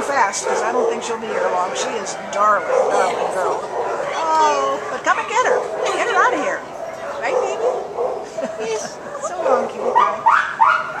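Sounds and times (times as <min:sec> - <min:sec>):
woman laughing: 0:08.2 - 0:09.4.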